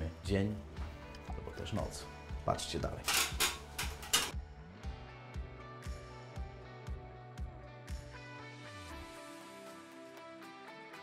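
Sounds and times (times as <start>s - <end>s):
background music with soft beat: 0.0s - 11.0s.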